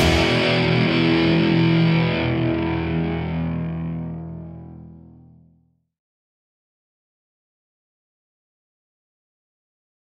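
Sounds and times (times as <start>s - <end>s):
distorted electric guitar chord: 0.0s - 5.5s.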